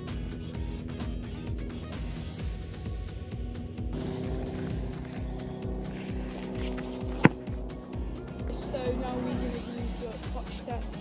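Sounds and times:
background music with steady beat: 0:00.0 - 0:11.0
football struck: 0:03.9 - 0:07.8.

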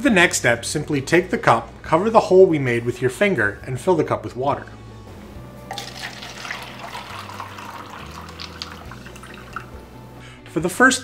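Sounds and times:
water pouring into plastic cup: 0:05.7 - 0:09.8.

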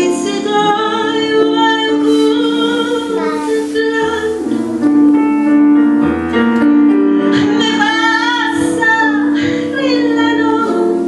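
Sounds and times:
electric piano: 0:00.0 - 0:11.0.

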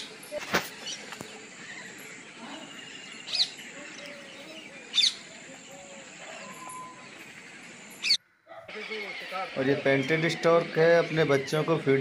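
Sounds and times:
bird calling: 0:00.0 - 0:12.0
faint outdoor background: 0:00.0 - 0:12.0.

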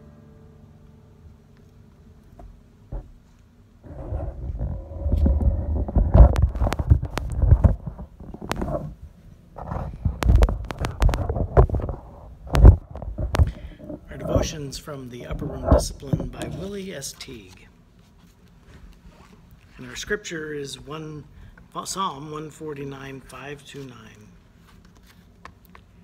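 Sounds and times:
phone handling noise: 0:03.9 - 0:09.0, 0:09.6 - 0:14.5
clicks and knocks: 0:09.6 - 0:14.5.

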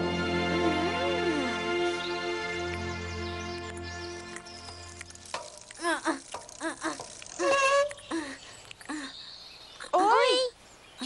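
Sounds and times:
soundtrack music with held chords: 0:00.0 - 0:05.2.

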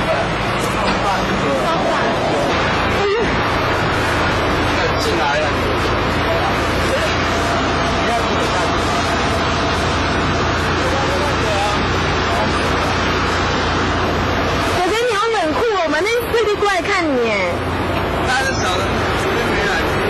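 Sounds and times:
vehicle engine humming: 0:00.0 - 0:20.0.

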